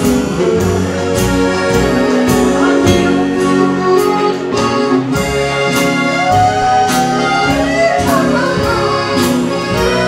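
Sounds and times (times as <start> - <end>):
accordion melody: 0.0 - 10.0
drums: 0.0 - 10.0
guitars: 0.0 - 10.0
upright bass: 0.0 - 10.0.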